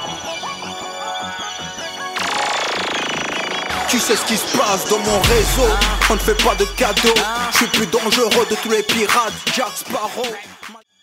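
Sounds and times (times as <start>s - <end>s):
music: 0.0s - 11.0s
electronic stuttering buzz: 2.2s - 7.8s.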